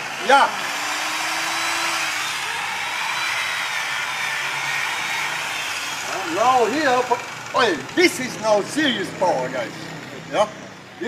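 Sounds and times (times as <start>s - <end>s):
angle grinder running: 0.0s - 11.0s.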